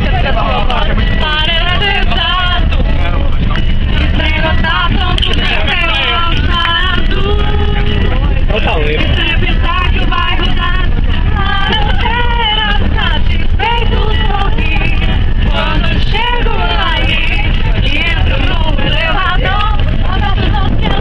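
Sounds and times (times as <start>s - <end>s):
acoustic guitar: 0.0s - 21.0s
bus engine and road rumble: 0.0s - 21.0s
people singing together: 0.0s - 21.0s.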